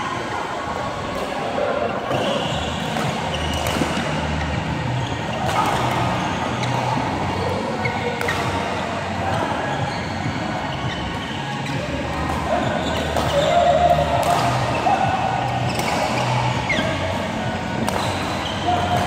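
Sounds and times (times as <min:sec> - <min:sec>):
shoes squeaking on floor: 0:02.1 - 0:19.0
racket hitting shuttlecock: 0:12.9 - 0:14.8, 0:15.7 - 0:16.9, 0:17.8 - 0:19.0.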